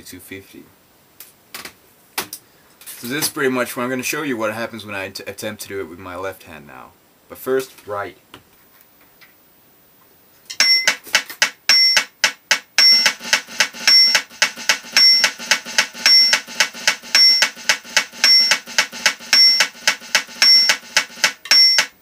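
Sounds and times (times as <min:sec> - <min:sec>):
drumsticks on mesh snare pad: 0:10.5 - 0:22.0
metronome beeps and clicks: 0:10.5 - 0:22.0.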